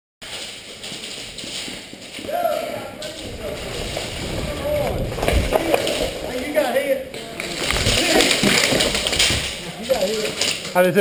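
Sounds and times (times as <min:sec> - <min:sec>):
heavy thumps: 0:00.2 - 0:10.6
footsteps on concrete floor: 0:00.2 - 0:10.7
indistinct voices calling out: 0:02.2 - 0:10.0.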